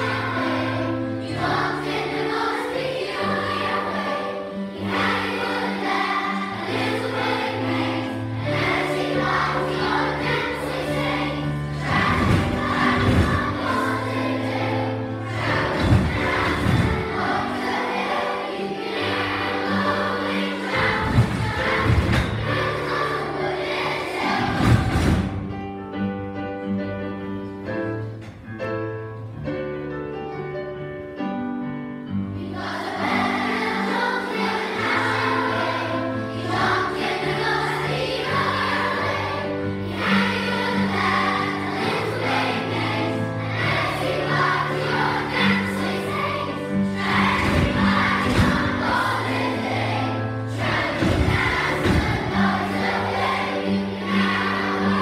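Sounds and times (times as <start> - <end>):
children's choir singing: 0.0 - 28.6, 32.0 - 55.0
instrumental accompaniment: 0.0 - 55.0
low thumps: 11.1 - 14.6, 15.2 - 18.0, 19.1 - 23.2, 24.0 - 25.6, 46.9 - 49.8, 50.5 - 53.2.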